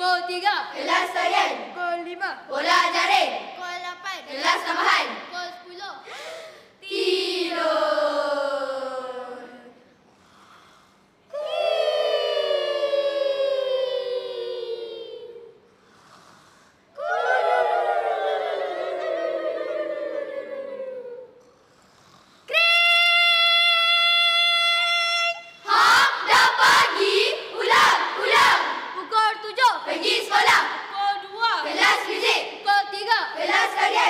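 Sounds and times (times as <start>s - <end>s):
children chanting: 0.6s - 1.8s, 2.5s - 3.6s, 4.2s - 5.3s, 25.6s - 34.0s.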